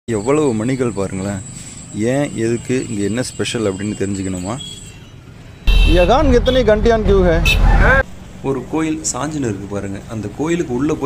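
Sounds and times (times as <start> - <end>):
man speaking: 5.7 - 11.0.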